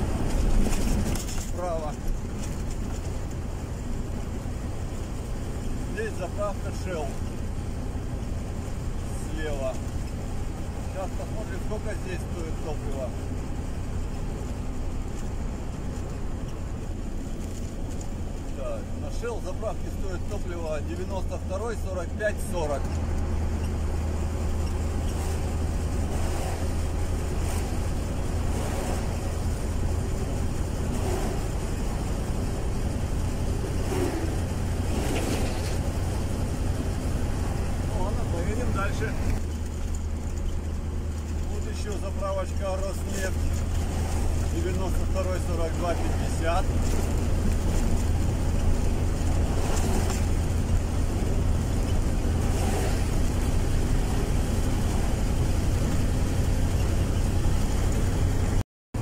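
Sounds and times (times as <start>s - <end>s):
road and engine rumble in car: 0.0s - 59.0s.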